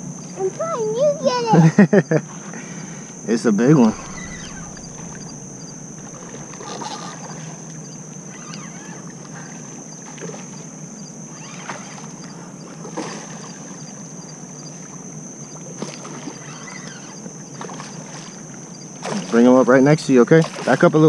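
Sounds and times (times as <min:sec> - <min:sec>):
water splashing and sloshing: 0:20.3 - 0:21.0.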